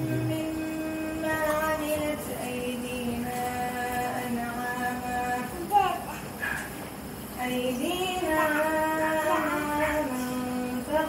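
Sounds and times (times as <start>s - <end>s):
high voice chanting: 0.0s - 6.8s, 7.4s - 11.0s.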